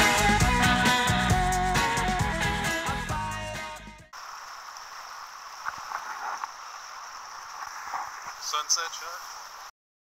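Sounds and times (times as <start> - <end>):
water splashes: 4.2 - 9.7.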